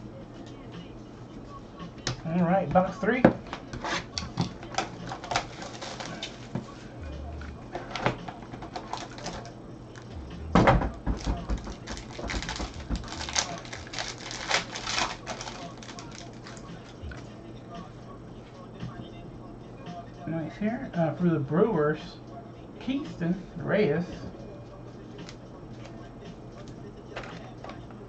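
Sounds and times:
plastic wrapping crinkling: 3.9 - 6.7, 7.8 - 9.5, 11.0 - 17.2.

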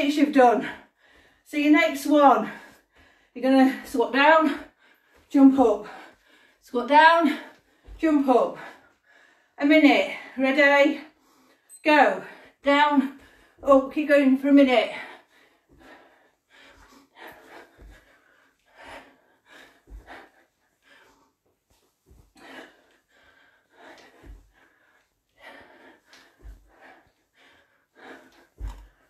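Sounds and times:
woman breathing hard and gasping: 14.9 - 29.0.

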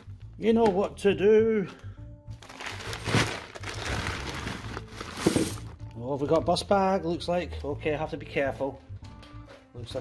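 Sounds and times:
background music: 0.0 - 10.0
plastic crinkling: 2.4 - 5.4
coins clinking: 5.1 - 5.7.

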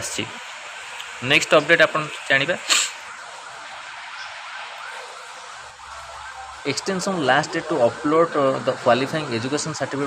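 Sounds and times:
background hiss: 0.0 - 5.6
faint siren-like tone: 0.0 - 10.0.

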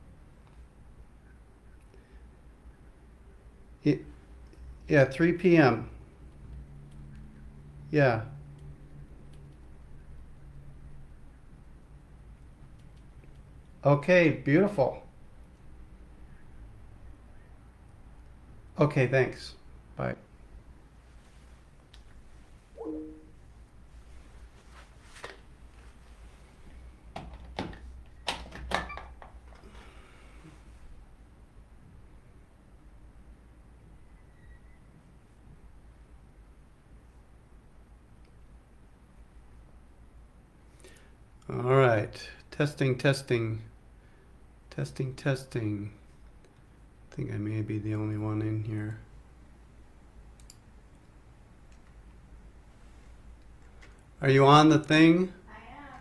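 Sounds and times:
steady low hum: 0.0 - 27.2
low steady hum: 0.0 - 56.0
small rustle: 21.0 - 22.8, 23.9 - 26.9
faint click: 50.4 - 51.1.

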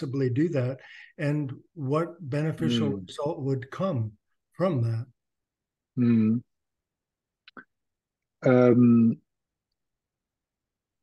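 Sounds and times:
person saying um: 2.6 - 3.0, 6.0 - 6.4.

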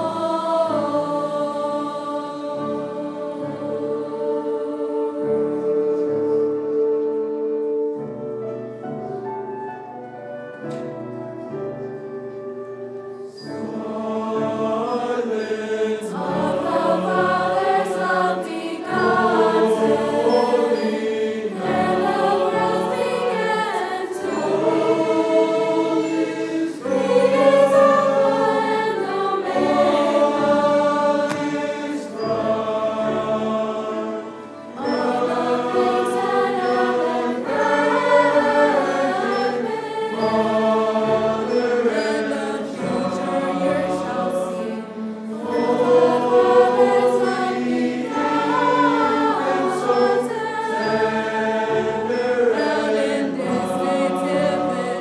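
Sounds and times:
choir singing: 0.0 - 55.0
orchestral accompaniment: 0.0 - 55.0.

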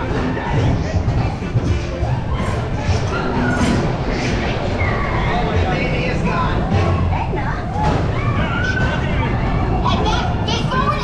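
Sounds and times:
roller coaster train rumbling: 0.0 - 11.0.

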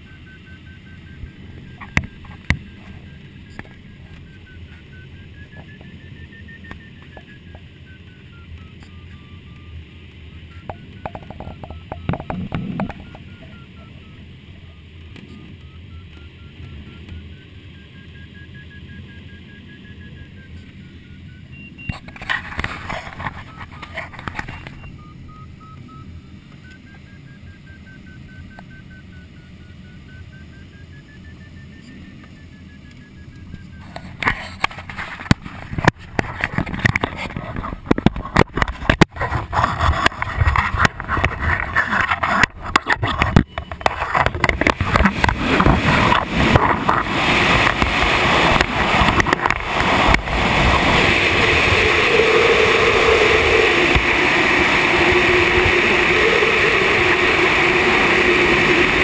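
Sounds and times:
variometer tone wavering in pitch: 0.0 - 59.0
rush of airflow: 44.8 - 59.0.

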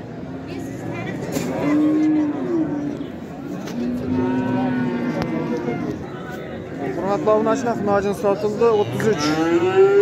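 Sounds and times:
cattle mooing: 1.6 - 2.9, 3.8 - 6.0, 8.8 - 10.0.

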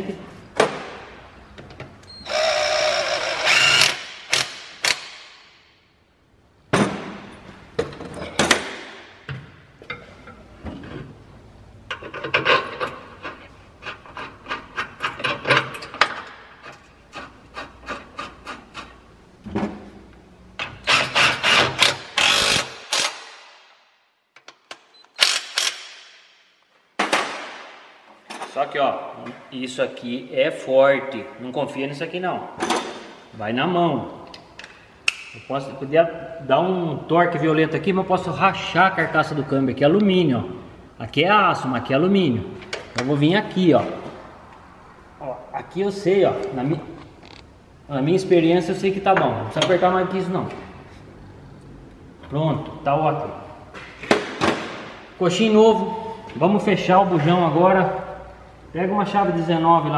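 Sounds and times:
impact wrench whirring: 2.2 - 5.3, 20.8 - 23.4, 25.1 - 26.1.

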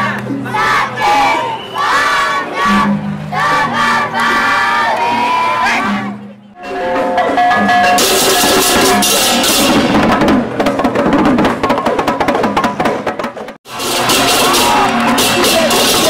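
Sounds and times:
voices chanting together: 0.0 - 6.3
music with held notes: 0.0 - 11.0, 13.7 - 16.0
crisp percussion: 6.5 - 16.0.

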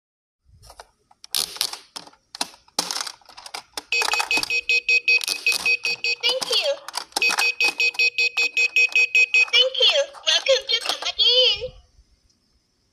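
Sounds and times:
fast high electronic beeps: 3.9 - 10.1
plastic clicks and knocks: 5.2 - 8.0.

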